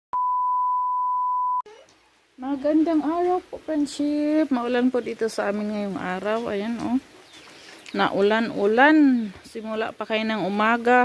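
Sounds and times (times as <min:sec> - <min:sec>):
high pure test tone beep: 0:00.1 - 0:01.6.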